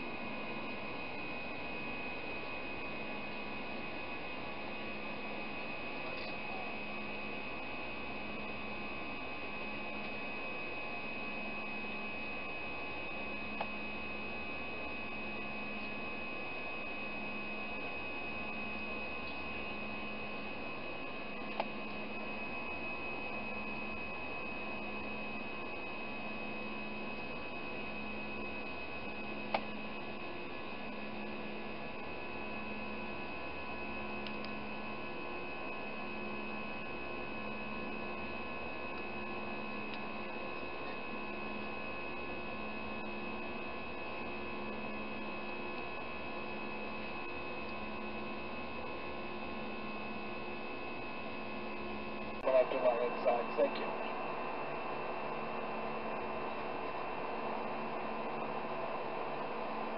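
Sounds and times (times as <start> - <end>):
jet cabin engine hum: 0.0 - 59.9.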